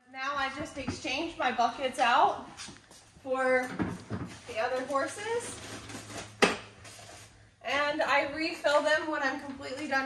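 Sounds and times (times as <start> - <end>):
woman speaking: 0.0 - 2.5, 3.2 - 5.6, 7.6 - 10.0.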